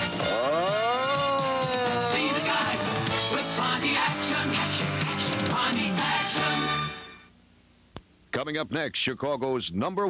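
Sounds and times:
advertising jingle with singers: 0:01.5 - 0:07.2.

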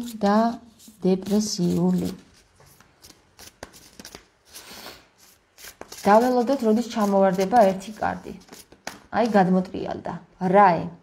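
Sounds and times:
cards being shuffled: 0:00.1 - 0:09.4.

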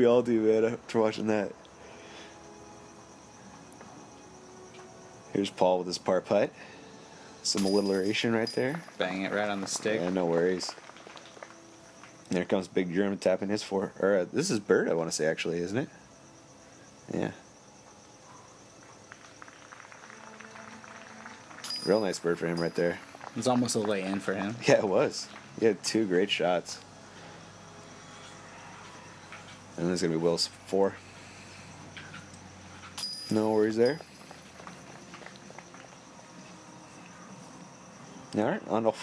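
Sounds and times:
insect trill: 0:00.0 - 0:39.0
steady hiss: 0:00.0 - 0:39.0
high-pitched steady tone: 0:01.0 - 0:10.6, 0:21.6 - 0:39.0.

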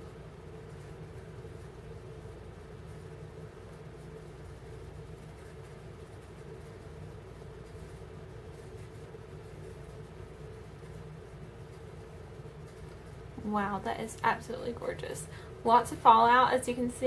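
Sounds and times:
low background hum and rumble: 0:00.0 - 0:17.0.

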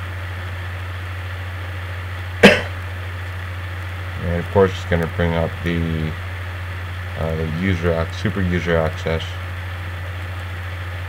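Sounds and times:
low hum: 0:00.0 - 0:11.0
person coughing: 0:02.4 - 0:02.8.

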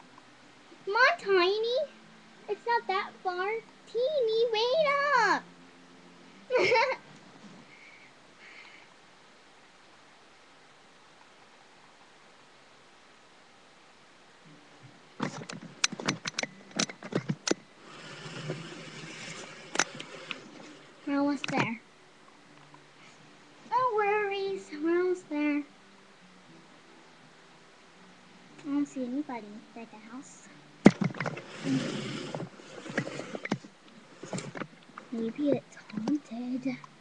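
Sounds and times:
handling clicks and knocks: 0:15.2 - 0:17.6, 0:30.9 - 0:31.4.

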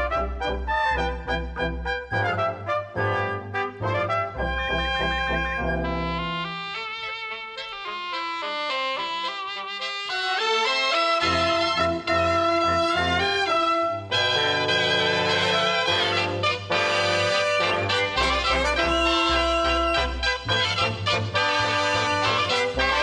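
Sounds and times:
wind and brass band playing: 0:00.0 - 0:23.0.

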